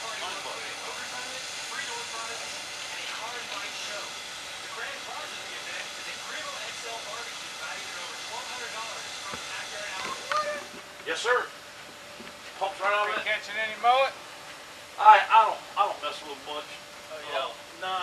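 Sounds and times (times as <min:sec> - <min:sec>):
indistinct chatter: 0:00.0 - 0:11.5
steady hiss: 0:00.0 - 0:18.0.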